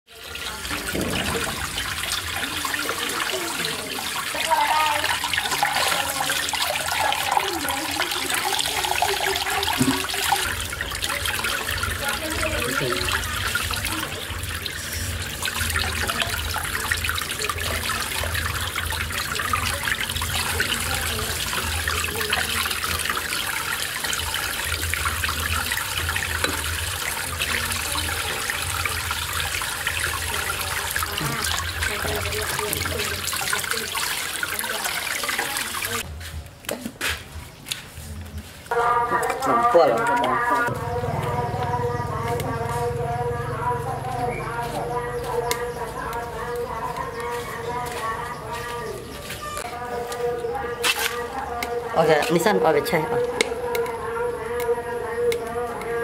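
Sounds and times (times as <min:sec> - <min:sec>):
water splashing onto bamboo mat: 0:00.1 - 0:41.4, 0:49.0 - 0:56.0.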